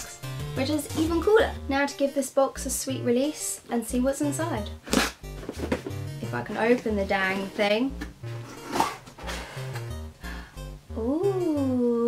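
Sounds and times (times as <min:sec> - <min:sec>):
background music with bass line: 0:00.0 - 0:02.0, 0:02.6 - 0:12.0.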